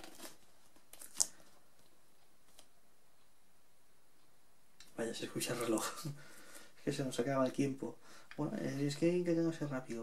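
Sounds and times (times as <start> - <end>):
dvd cases rustling: 0.0 - 1.9.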